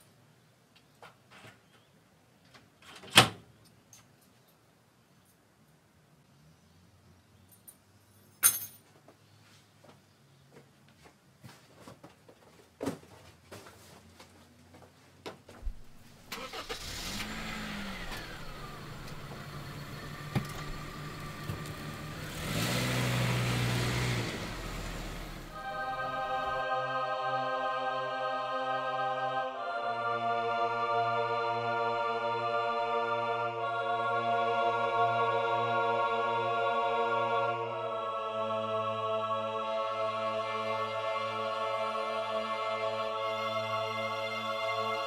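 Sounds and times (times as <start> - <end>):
engine running: 16.3 - 26.6.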